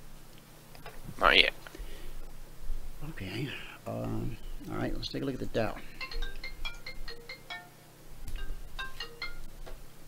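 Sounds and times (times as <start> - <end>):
electronic chiming ringtone melody: 5.8 - 9.5.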